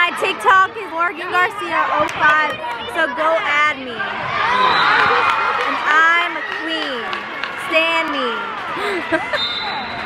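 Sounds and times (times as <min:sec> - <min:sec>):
girls talking and calling out: 0:00.0 - 0:04.5, 0:05.3 - 0:09.4.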